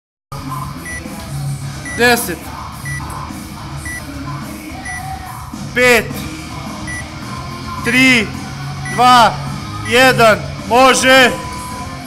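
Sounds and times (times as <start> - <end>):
timer beeps: 0.8 - 1.1, 1.8 - 2.1, 2.8 - 3.1, 3.8 - 4.0, 4.8 - 5.1, 6.9 - 7.1, 8.8 - 9.1, 11.4 - 12.0.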